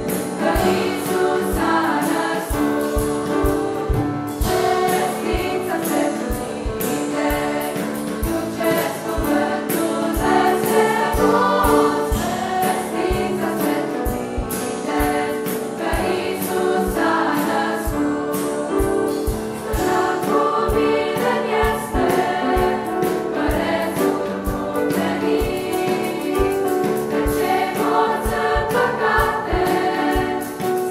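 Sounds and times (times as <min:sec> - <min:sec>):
choir singing a carol: 0:00.0 - 0:30.9.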